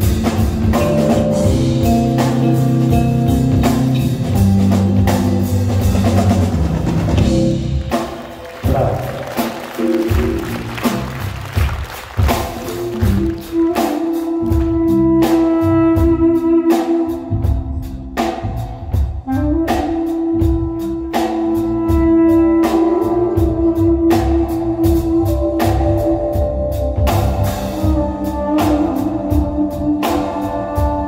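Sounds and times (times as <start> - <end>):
drum kit and cymbals: 0.0 - 31.0.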